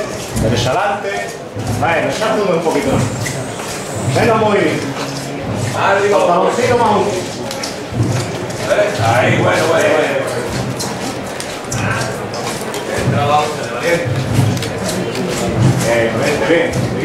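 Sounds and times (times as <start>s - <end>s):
men talking: 0.0s - 17.0s
scuffs and clicks: 0.0s - 17.0s
man giving orders: 4.0s - 7.4s, 8.5s - 10.6s.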